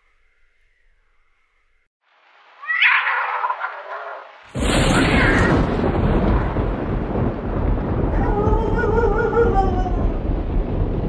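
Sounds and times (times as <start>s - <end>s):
cat yowling: 2.6s - 4.2s, 4.9s - 5.6s.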